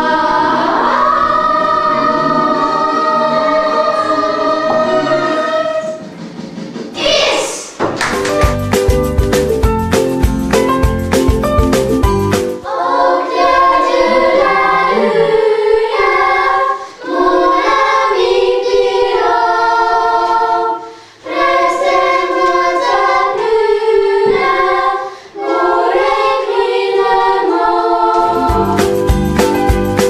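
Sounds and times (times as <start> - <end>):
children's choir singing: 0.0 - 6.3, 6.9 - 7.8, 12.6 - 29.1
backing track with beat: 8.0 - 12.6, 28.2 - 30.0.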